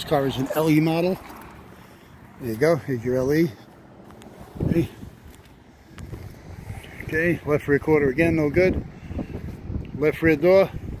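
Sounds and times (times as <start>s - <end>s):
wind buffeting microphone: 4.4s - 11.0s.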